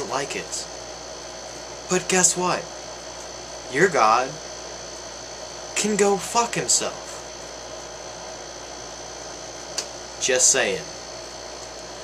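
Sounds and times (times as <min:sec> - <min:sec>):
air conditioner hum and hiss: 0:00.0 - 0:12.0.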